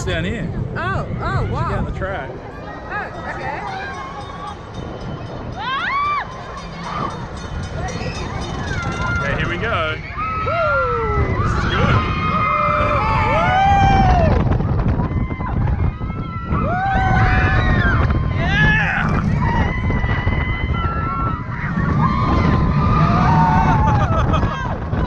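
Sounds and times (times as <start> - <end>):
roller coaster rumbling on track: 0.0 - 25.0
wind rushing over microphone: 0.0 - 25.0
riders screaming and whooping: 2.4 - 25.0.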